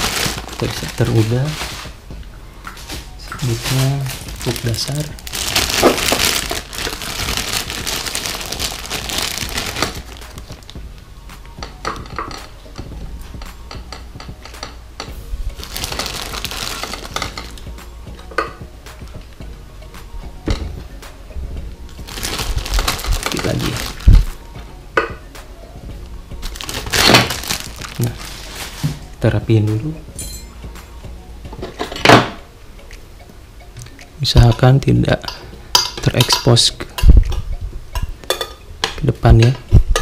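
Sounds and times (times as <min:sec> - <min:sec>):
plastic bag crinkling: 0:00.0 - 0:01.9, 0:03.4 - 0:10.8, 0:15.6 - 0:17.6, 0:22.0 - 0:24.4, 0:26.4 - 0:28.9.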